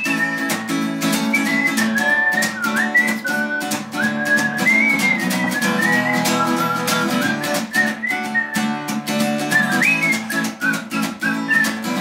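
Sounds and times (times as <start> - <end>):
acoustic guitar strumming: 0.0 - 12.0
whistled melody: 0.0 - 12.0.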